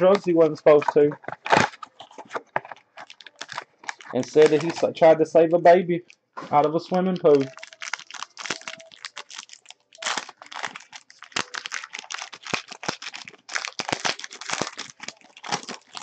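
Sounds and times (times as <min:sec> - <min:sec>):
plastic wrapper crinkling: 0:00.0 - 0:05.2, 0:06.0 - 0:16.0.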